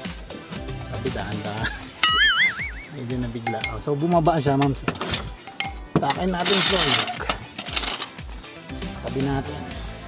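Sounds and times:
music with steady beat: 0:00.0 - 0:06.4.

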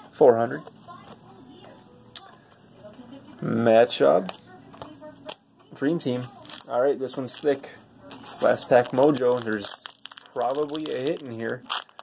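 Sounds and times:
cards handled and flipped: 0:06.2 - 0:12.0.

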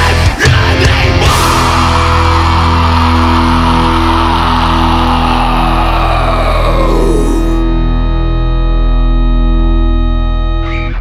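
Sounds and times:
distorted guitar and bass chord: 0:00.0 - 0:11.0.

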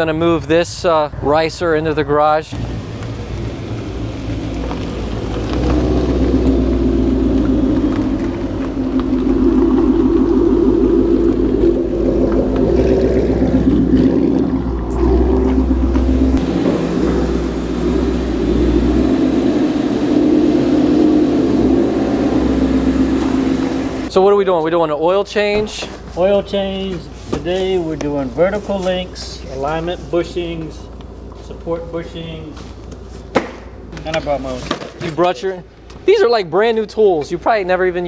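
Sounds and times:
car engine idling: 0:02.5 - 0:24.1.

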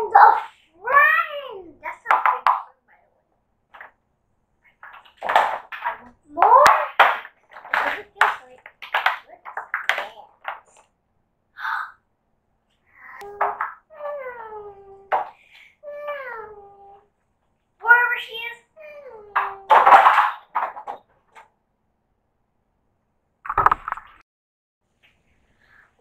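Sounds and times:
girl talking and exclaiming: 0:00.0 - 0:03.0, 0:06.0 - 0:08.6, 0:13.0 - 0:17.1, 0:17.8 - 0:19.9
girl's gliding vocal sounds: 0:13.1 - 0:17.0.

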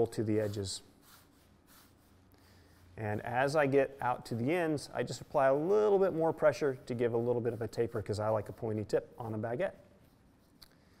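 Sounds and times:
hands rolling dough on wood: 0:00.0 - 0:10.6.

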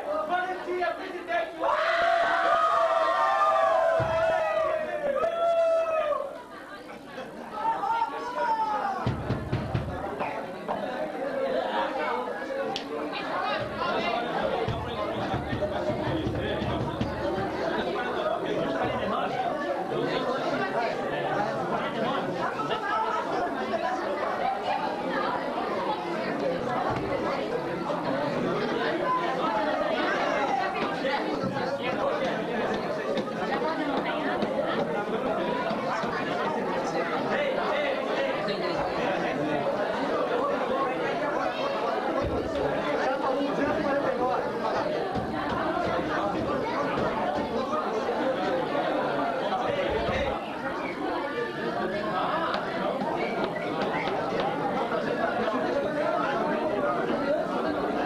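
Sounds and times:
hubbub of voices: 0:00.0 - 0:58.0.

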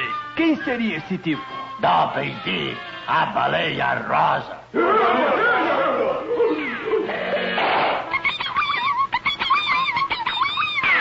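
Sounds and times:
cartoon rats squeaking: 0:08.1 - 0:11.0.

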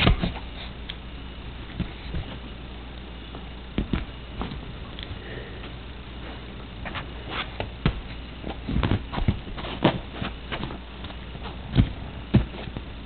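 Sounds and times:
plastic ball thumping on cushion: 0:03.7 - 0:04.6, 0:07.6 - 0:12.8.

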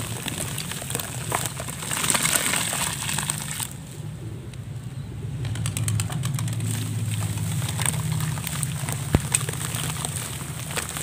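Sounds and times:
low steady hum: 0:00.0 - 0:11.0
foamy water fizzing: 0:06.6 - 0:11.0
wet mud crumbling into water: 0:06.6 - 0:11.0.

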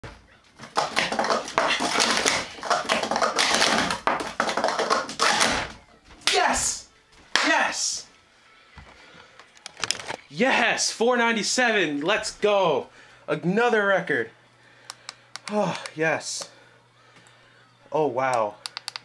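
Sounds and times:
plastic cups clattering: 0:00.6 - 0:06.4.

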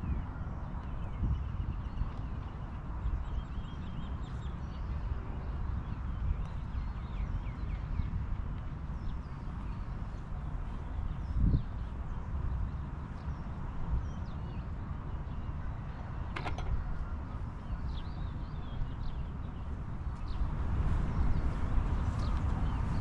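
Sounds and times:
small birds chirping: 0:17.8 - 0:23.0.

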